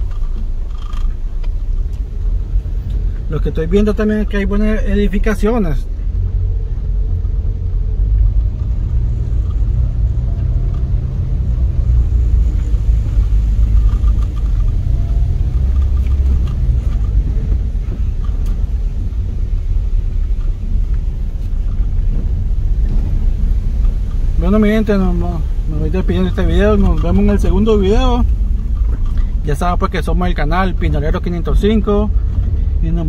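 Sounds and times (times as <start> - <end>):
car engine rumble: 0.0 - 33.0
tyre noise on rough street: 0.0 - 33.0.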